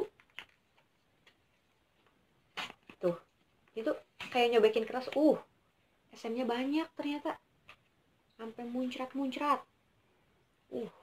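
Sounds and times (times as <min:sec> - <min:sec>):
sachet crinkling: 0:00.0 - 0:03.1.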